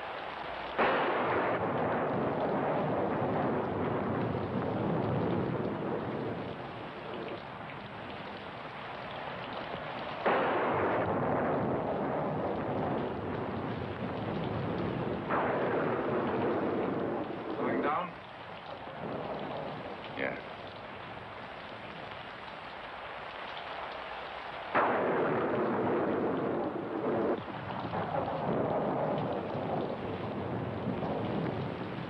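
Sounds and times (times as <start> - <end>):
steady rain: 0.0 - 32.0
rolling thunderclaps: 0.7 - 22.5, 24.7 - 32.0.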